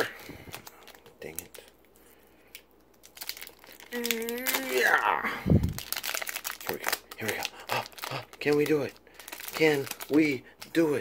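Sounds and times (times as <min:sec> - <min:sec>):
foil wrapper crinkling: 0:00.0 - 0:01.8, 0:02.5 - 0:11.0.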